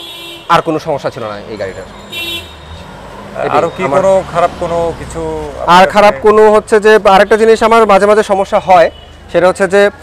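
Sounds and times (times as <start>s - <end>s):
vehicle horn toot: 0.0s - 0.8s, 2.1s - 2.8s
man speaking: 3.3s - 10.0s.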